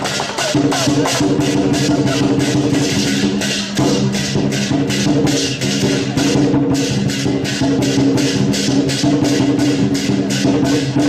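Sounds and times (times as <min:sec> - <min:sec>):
cymbals clashing: 0:00.0 - 0:11.0
drumming: 0:00.0 - 0:11.0.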